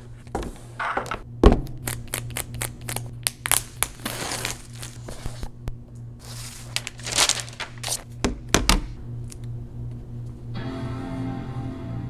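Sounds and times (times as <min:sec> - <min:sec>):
steady low hum: 0:00.0 - 0:12.0
tear strip peeling off cardboard: 0:01.8 - 0:05.1.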